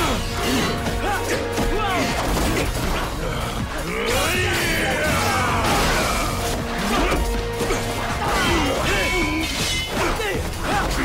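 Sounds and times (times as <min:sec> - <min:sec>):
driving action music: 0:00.0 - 0:11.0
metal blades clashing: 0:00.0 - 0:11.0.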